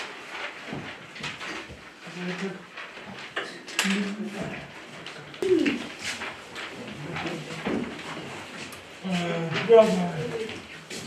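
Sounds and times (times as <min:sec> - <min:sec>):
person humming: 0:05.4 - 0:05.8.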